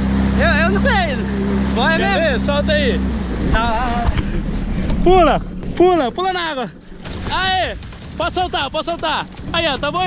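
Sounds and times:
jet ski engine hum: 0:00.0 - 0:10.0.

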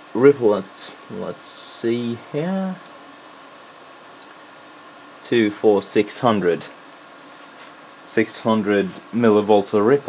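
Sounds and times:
steady low hiss: 0:00.0 - 0:10.0.

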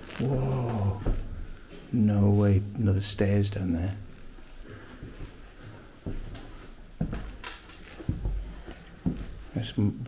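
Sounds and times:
footsteps on wooden floorboards: 0:04.7 - 0:09.5.

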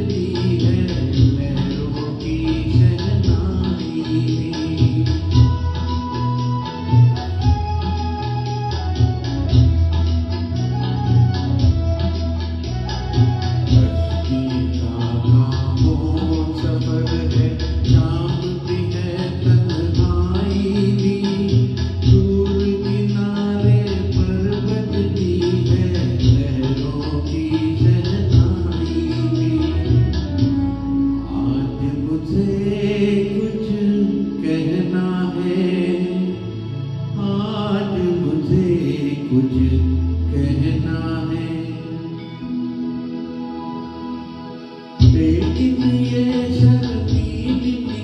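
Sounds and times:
man singing into microphone: 0:00.0 - 0:08.8, 0:12.9 - 0:42.9, 0:45.0 - 0:48.0
recorded backing music: 0:00.0 - 0:48.0.

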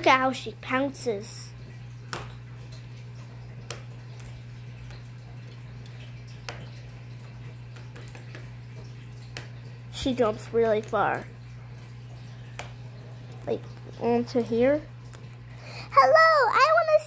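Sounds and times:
steady low hum: 0:00.0 - 0:16.8.

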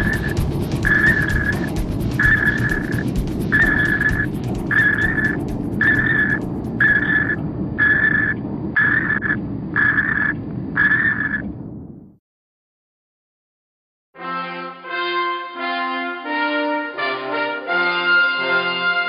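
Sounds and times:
high electronic beeps: 0:00.0 - 0:11.4
low rumble: 0:00.0 - 0:12.2.

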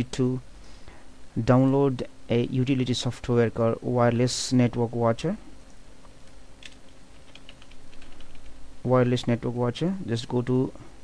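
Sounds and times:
faint steady hum: 0:00.0 - 0:11.0
computer keyboard typing: 0:06.6 - 0:08.5.

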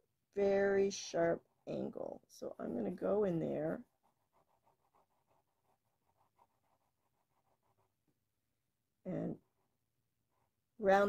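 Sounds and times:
marker scratching on paper: 0:00.4 - 0:08.2.

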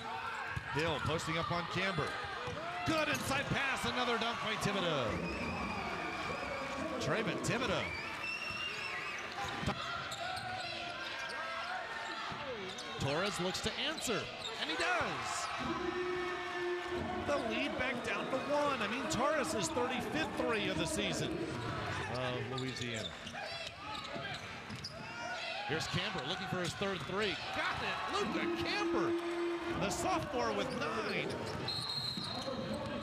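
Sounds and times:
voices in arena: 0:00.0 - 0:33.0.

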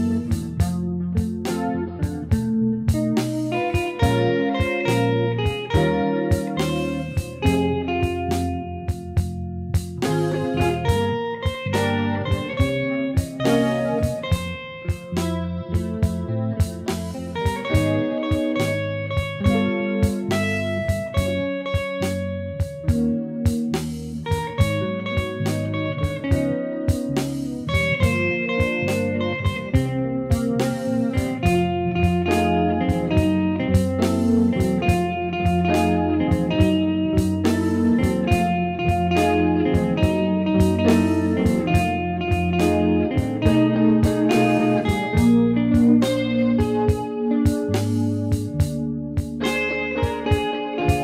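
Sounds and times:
electric guitar jazz-blues: 0:00.0 - 0:51.0.

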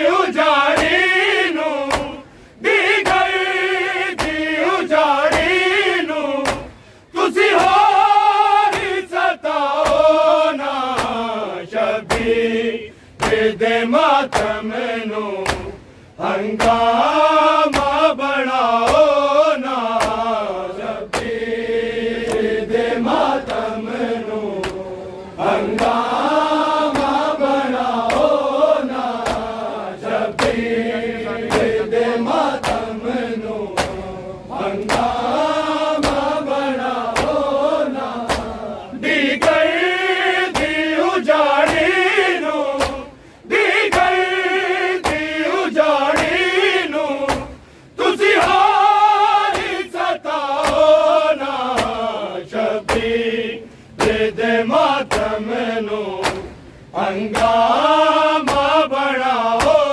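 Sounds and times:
men chanting a lament: 0:00.0 - 0:59.9
hands slapping chests: 0:01.8 - 0:02.2, 0:04.2 - 0:04.5, 0:05.2 - 0:05.6, 0:06.4 - 0:06.8, 0:08.7 - 0:09.0, 0:10.9 - 0:11.3, 0:12.0 - 0:12.4, 0:13.2 - 0:13.5, 0:14.3 - 0:14.6, 0:15.4 - 0:15.8, 0:16.6 - 0:16.9, 0:17.7 - 0:18.0, 0:18.8 - 0:19.2, 0:19.9 - 0:20.3, 0:21.1 - 0:21.4, 0:24.6 - 0:24.8, 0:25.7 - 0:26.1, 0:28.0 - 0:28.4, 0:29.2 - 0:29.7, 0:30.3 - 0:30.6, 0:31.4 - 0:31.8, 0:32.6 - 0:32.9, 0:33.7 - 0:34.1, 0:34.8 - 0:36.4, 0:37.1 - 0:37.4, 0:38.2 - 0:38.6, 0:40.5 - 0:40.9, 0:41.6 - 0:42.0, 0:42.8 - 0:43.1, 0:43.9 - 0:44.2, 0:45.0 - 0:45.4, 0:46.1 - 0:46.4, 0:47.3 - 0:47.6, 0:49.5 - 0:49.8, 0:50.6 - 0:51.0, 0:51.7 - 0:52.1, 0:52.8 - 0:53.1, 0:54.0 - 0:54.3, 0:55.0 - 0:55.4, 0:56.2 - 0:56.6, 0:57.3 - 0:57.6, 0:58.4 - 0:58.8.

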